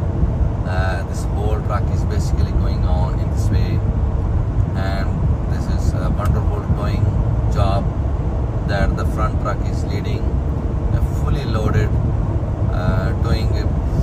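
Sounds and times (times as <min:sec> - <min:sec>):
road and engine rumble: 0:00.0 - 0:14.0.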